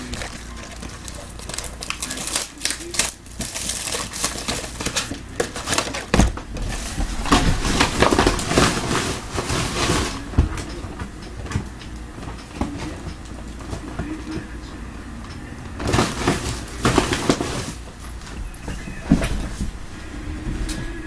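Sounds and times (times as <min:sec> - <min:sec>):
plastic wrapping crinkling: 0:00.0 - 0:14.4, 0:15.8 - 0:20.1.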